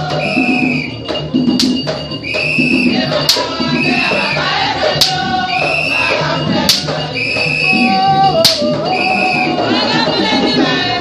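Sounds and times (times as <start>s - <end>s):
people singing: 0.0s - 11.0s
percussion strikes: 0.0s - 11.0s.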